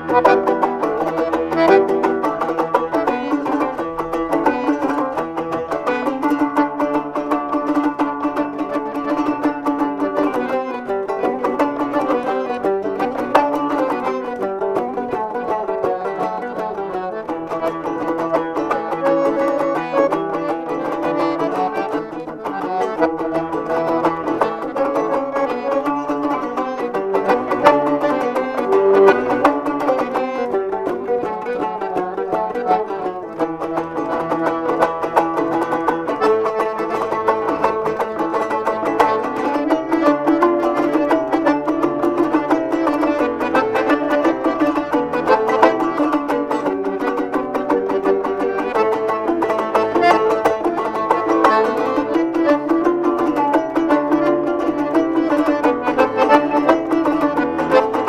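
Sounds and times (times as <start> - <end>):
accordion: 0.0 - 58.0
lute strummed rapidly: 0.0 - 58.0.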